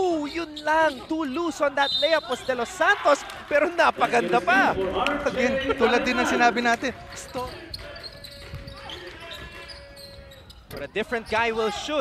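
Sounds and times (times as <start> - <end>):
sneaker squeaks: 0.1 - 2.7, 7.0 - 11.7.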